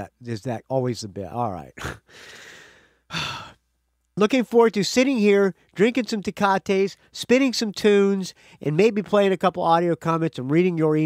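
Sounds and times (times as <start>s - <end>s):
man sighing: 1.8s - 3.7s.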